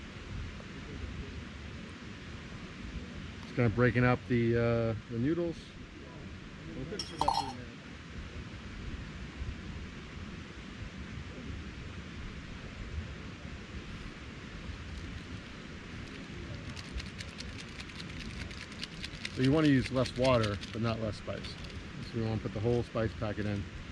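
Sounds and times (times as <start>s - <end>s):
steady faint hiss: 0.0s - 23.9s
spork clinking on metal pot: 7.0s - 7.6s
spice packet crinkling: 16.1s - 21.8s.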